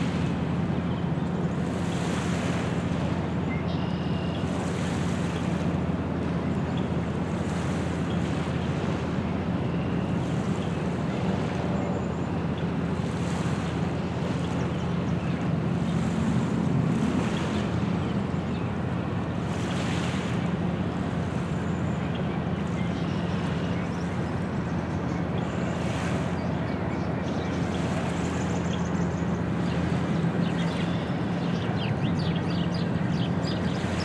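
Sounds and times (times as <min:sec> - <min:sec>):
boat engine drone: 0:00.0 - 0:34.0
waves lapping on stony shore: 0:00.0 - 0:34.0.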